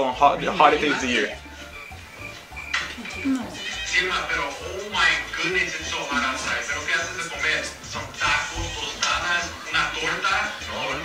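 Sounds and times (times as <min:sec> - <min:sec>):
background music: 0:00.0 - 0:11.0
person speaking: 0:03.0 - 0:03.8, 0:06.0 - 0:07.8.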